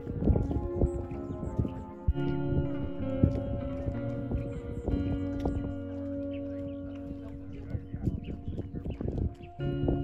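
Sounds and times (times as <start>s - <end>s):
music with sustained notes: 0.0s - 10.0s.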